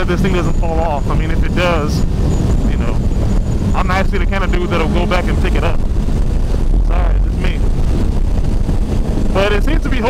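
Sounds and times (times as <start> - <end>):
motorcycle engine: 0.0 - 10.0
road noise: 0.0 - 10.0
wind rumble on microphone: 0.0 - 10.0.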